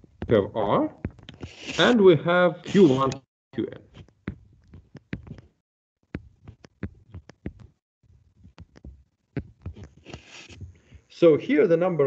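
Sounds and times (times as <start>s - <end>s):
stylus tapping on drawing tablet: 3.9s - 7.8s, 8.4s - 10.6s.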